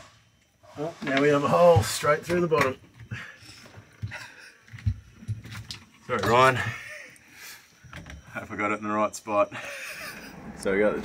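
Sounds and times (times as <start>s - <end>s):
soft breathy chuckles: 6.6s - 7.6s, 9.6s - 10.6s.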